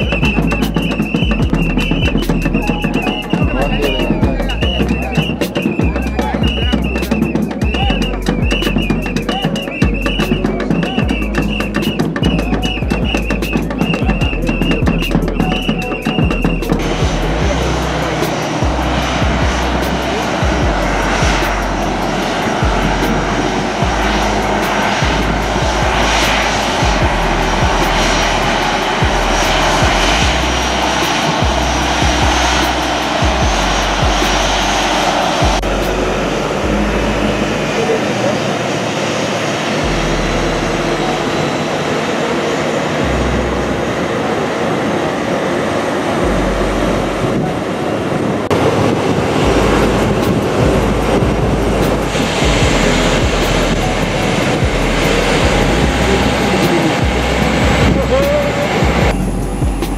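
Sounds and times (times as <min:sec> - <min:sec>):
music with steady bass beat: 0:00.0 - 0:37.7, 0:46.2 - 0:47.2, 0:49.4 - 0:59.9
jet engines running: 0:00.0 - 0:59.9.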